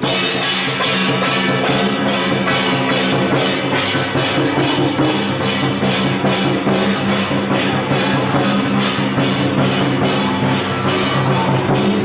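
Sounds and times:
barrel drum beating: 0.0s - 12.0s
brass hand cymbals: 0.0s - 12.0s
gong: 0.0s - 12.0s.

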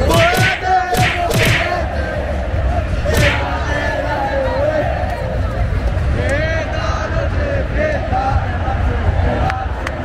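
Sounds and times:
sharp percussive beats: 0.0s - 1.8s, 3.1s - 3.6s
stadium crowd chanting: 0.0s - 10.0s.

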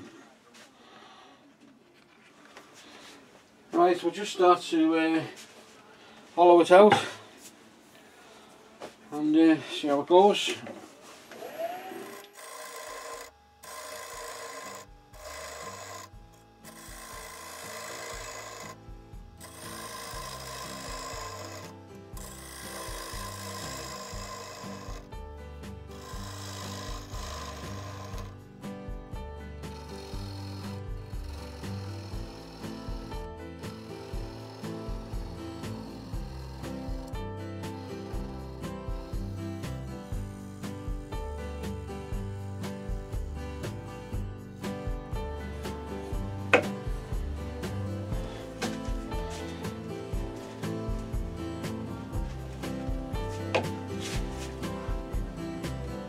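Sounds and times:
gouge cutting wood on a lathe: 11.4s - 25.1s, 25.9s - 28.3s, 29.6s - 39.8s.

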